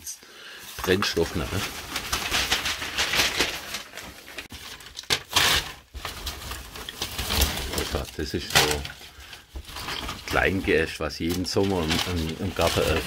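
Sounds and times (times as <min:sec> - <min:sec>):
newspaper rustling and crinkling: 0:00.6 - 0:13.0
dry twigs rattling: 0:00.8 - 0:13.0.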